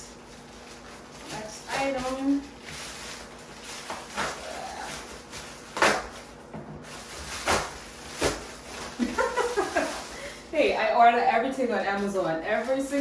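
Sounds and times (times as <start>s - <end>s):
plastic mailer bag rustling: 0.0s - 10.5s, 11.4s - 13.0s.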